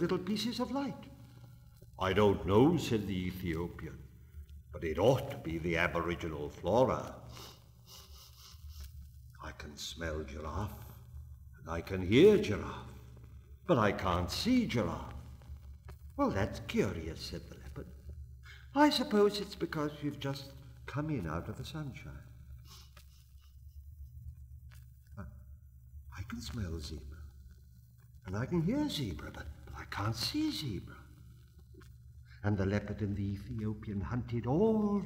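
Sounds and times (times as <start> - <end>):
man speaking: 0.0 - 1.2, 2.0 - 4.1, 4.7 - 7.3, 9.4 - 11.0, 11.6 - 13.0, 13.6 - 15.3, 16.2 - 18.0, 18.6 - 22.3, 26.1 - 27.2, 28.2 - 31.1, 32.3 - 35.0
faint low hum and hiss: 0.0 - 35.0.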